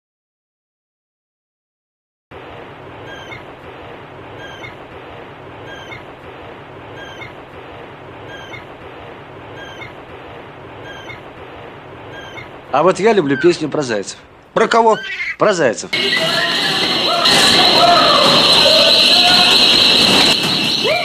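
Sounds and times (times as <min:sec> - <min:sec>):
short falling chirp: 0:04.4 - 0:04.8, 0:05.6 - 0:06.0, 0:06.9 - 0:07.4, 0:08.2 - 0:08.7, 0:09.5 - 0:10.0, 0:10.8 - 0:11.2, 0:12.1 - 0:12.5.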